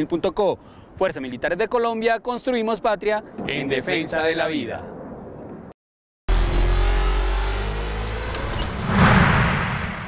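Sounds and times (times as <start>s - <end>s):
rising tone: 6.3s - 10.0s
whoosh: 7.8s - 10.0s.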